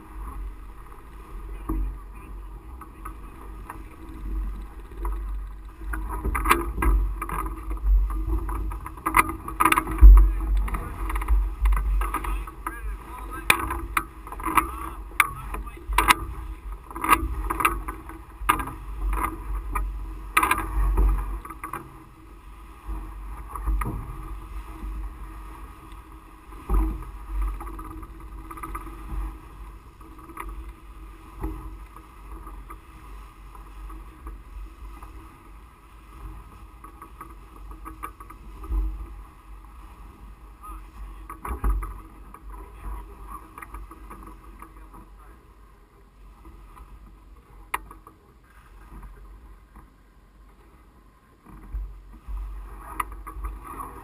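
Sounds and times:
wind gusting over microphone: 0.0s - 35.2s.

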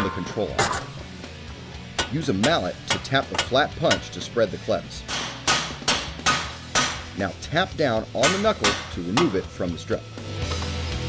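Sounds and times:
mallet striking metal punch: 1.9s - 4.1s, 5.1s - 7.2s, 8.2s - 9.5s.

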